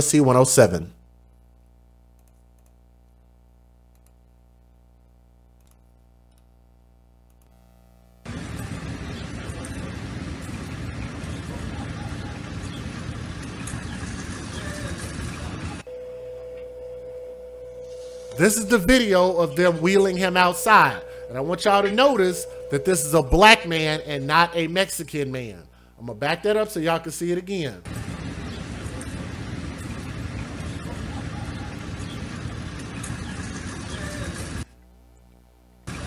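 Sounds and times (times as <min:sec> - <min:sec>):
faint hum: 0:00.0 - 0:36.0
street noise hiss and rumble: 0:08.3 - 0:15.9, 0:27.2 - 0:34.7
fainter higher electronic tone: 0:15.4 - 0:25.0
steady electronic tone: 0:15.7 - 0:25.0.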